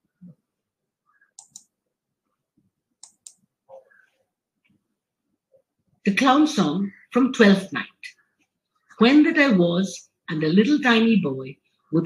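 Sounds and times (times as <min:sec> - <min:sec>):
faint computer mouse clicks: 0:01.4 - 0:01.7, 0:03.0 - 0:03.4.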